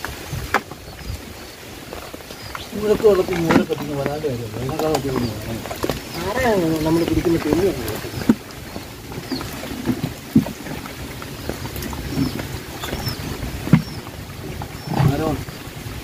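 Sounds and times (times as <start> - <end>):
person speaking: 2.7 - 8.1.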